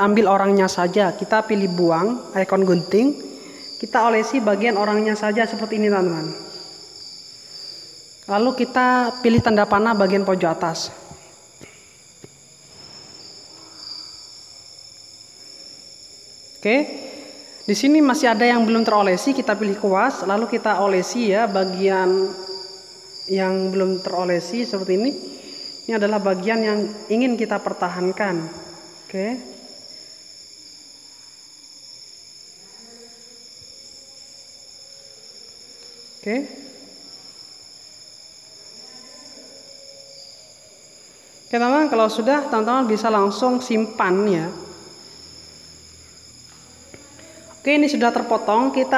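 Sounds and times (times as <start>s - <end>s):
steady high-pitched whine: 0.0s - 48.9s.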